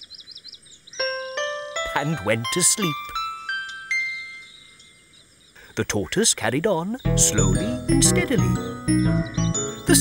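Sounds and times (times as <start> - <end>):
rising bell-like chimes: 1.0 - 5.2.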